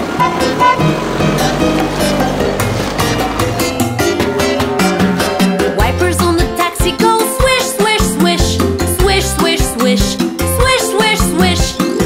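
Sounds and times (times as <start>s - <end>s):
cartoon car engine drone: 0.0s - 9.2s
music: 0.0s - 12.0s.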